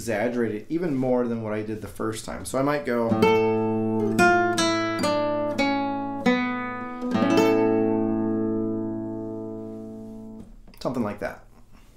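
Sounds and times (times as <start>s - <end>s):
classical guitar fingerstyle: 3.0s - 10.8s.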